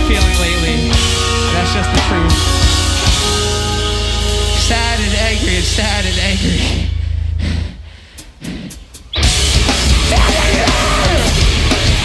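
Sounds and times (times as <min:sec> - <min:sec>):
low bass drone: 0:00.0 - 0:07.9.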